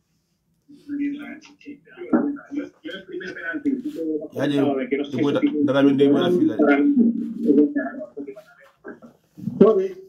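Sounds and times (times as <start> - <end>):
man speaking: 0.8 - 10.0.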